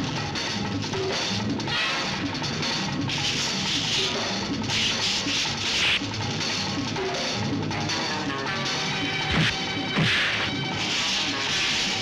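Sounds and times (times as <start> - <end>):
punch sound effect: 9.3 - 10.5.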